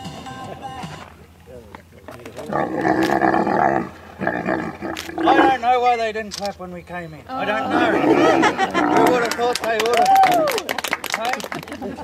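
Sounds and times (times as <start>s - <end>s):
camel bellowing: 2.4s - 5.7s, 7.4s - 9.3s.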